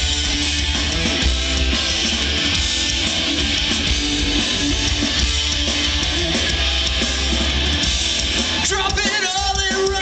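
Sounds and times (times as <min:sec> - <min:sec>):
rock band playing live: 0:00.0 - 0:10.0
strummed guitars: 0:00.0 - 0:10.0.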